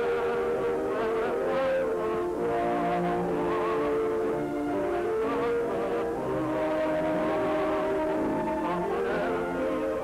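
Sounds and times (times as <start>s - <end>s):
orchestral music with held chords: 0.0s - 10.0s.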